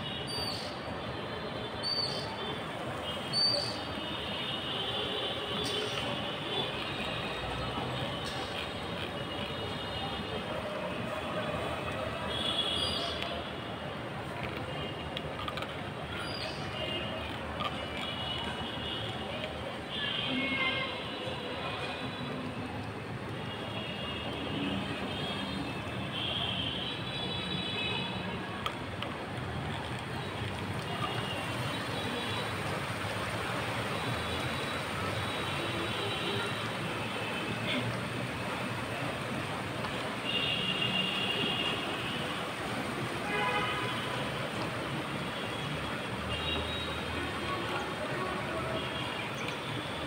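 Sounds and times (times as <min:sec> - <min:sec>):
city ambience rushing noise: 0:00.0 - 0:50.0.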